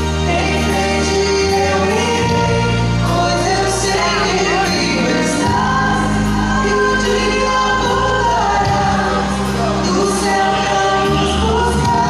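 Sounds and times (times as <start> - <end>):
backing voices singing: 0.0 - 12.0
live band playing: 0.0 - 12.0
woman singing lead: 0.0 - 12.0.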